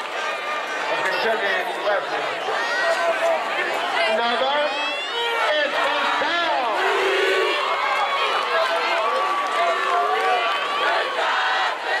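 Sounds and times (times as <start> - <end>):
crowd talking and shouting: 0.0 - 12.0.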